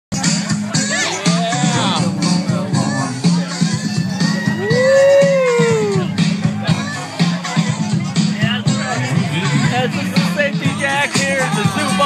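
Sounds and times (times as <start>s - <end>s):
dance music with steady beat: 0.2s - 12.0s
person howling: 4.3s - 6.1s.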